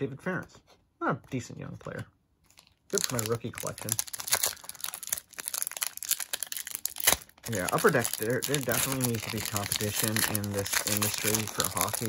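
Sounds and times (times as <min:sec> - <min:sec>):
foil wrapper crinkling: 0:02.5 - 0:12.0.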